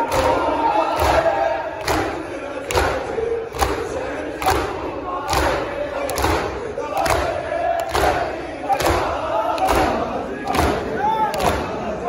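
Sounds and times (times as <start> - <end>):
crowd beating chests in unison: 0.0 - 12.0
crowd voices: 0.0 - 12.0.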